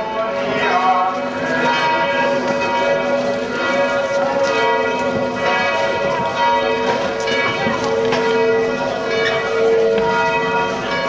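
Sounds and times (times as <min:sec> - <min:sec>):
church bells pealing: 0:00.0 - 0:11.0.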